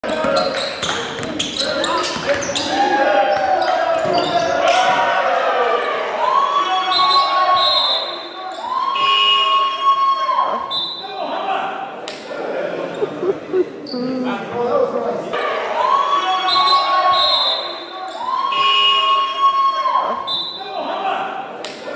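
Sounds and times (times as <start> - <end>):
voices in a hall: 0.0 - 21.9
shoes squeaking on court: 0.1 - 4.7.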